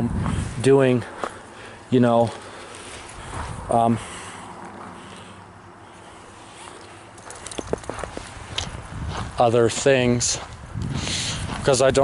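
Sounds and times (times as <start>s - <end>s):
faint outdoor background: 0.0s - 12.0s
footsteps walking: 0.1s - 1.5s, 2.1s - 5.4s, 6.0s - 12.0s.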